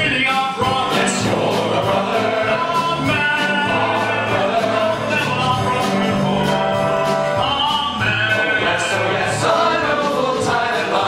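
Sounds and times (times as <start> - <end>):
male chorus singing: 0.0 - 6.6, 7.4 - 11.0
steady beat: 0.0 - 11.0.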